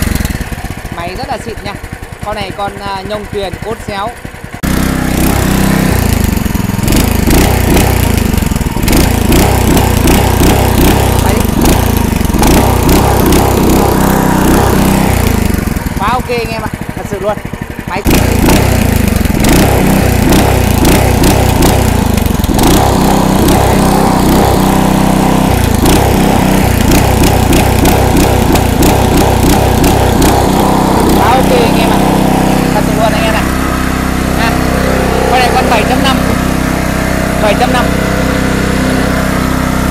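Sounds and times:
gasoline engine running loudly: 0:00.0 - 0:39.9.

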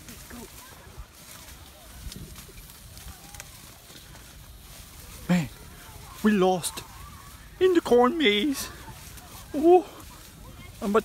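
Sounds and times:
wind rumble on microphone: 0:00.0 - 0:06.2
faint distant voices: 0:00.0 - 0:11.0.

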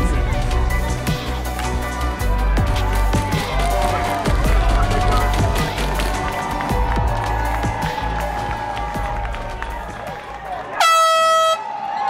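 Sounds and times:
background music with bass beat: 0:00.0 - 0:10.6
loud air horn blast: 0:10.7 - 0:11.7.

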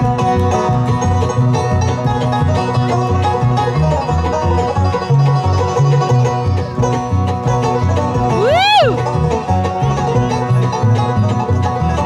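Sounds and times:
acoustic guitar: 0:00.0 - 0:12.0
banjo: 0:00.0 - 0:12.0
fiddle lead: 0:00.0 - 0:12.0
upright bass walking: 0:00.0 - 0:12.0.

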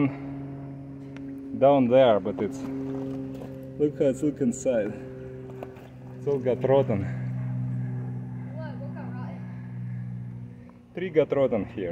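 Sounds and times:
low machine hum: 0:00.0 - 0:11.9.

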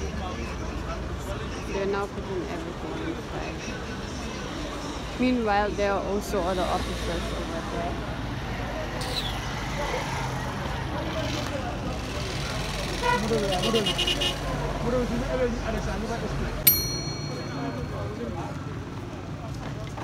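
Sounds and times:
sharp metallic clink: 0:16.7 - 0:18.1.

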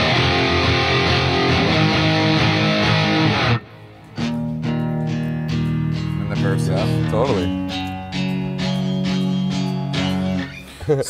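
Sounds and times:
electric guitar chords: 0:00.0 - 0:10.7.

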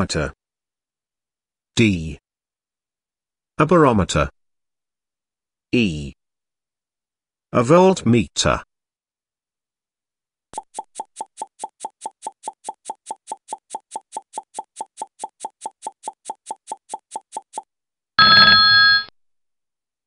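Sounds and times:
clock ticking: 0:10.6 - 0:17.7
loud ringing bell: 0:18.2 - 0:19.1.

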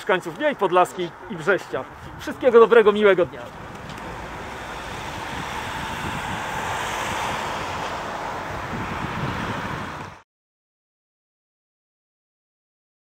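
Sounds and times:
road traffic passing: 0:00.0 - 0:10.2.

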